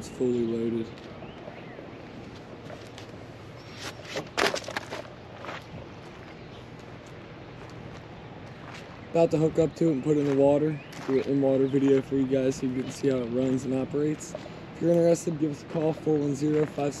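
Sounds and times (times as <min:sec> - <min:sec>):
footsteps crunching on gravel: 0:00.8 - 0:17.0.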